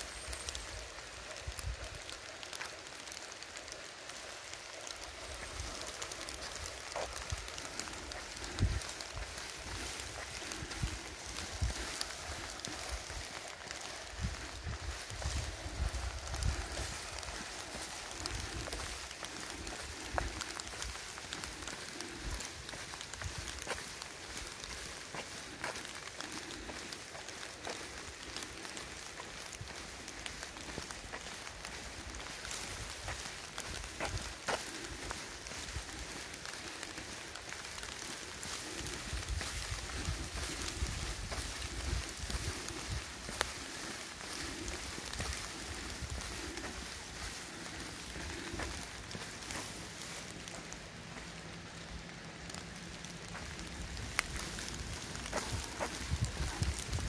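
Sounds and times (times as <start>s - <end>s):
light rain hissing: 0.0s - 57.0s
wind buffeting microphone: 5.0s - 24.9s, 38.5s - 47.4s, 53.3s - 57.0s.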